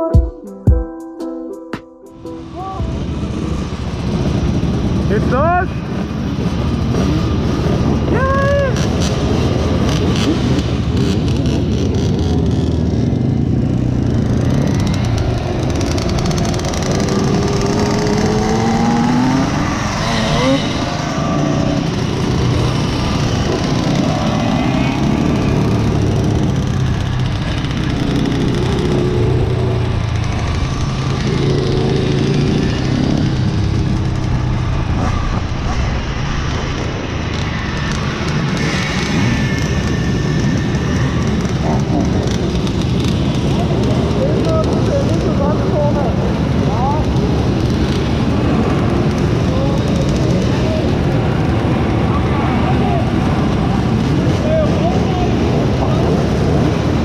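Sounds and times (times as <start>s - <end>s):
moped engines revving: 2.4s - 57.0s.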